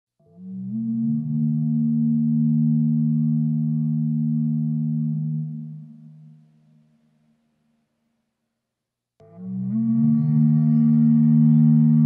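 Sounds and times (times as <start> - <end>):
low humming drone chord: 0.7 - 6.9, 9.2 - 12.0.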